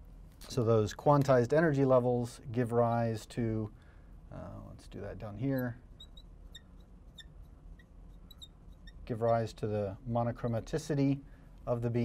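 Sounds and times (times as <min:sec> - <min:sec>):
marker squeaking on glass: 0:05.3 - 0:11.0.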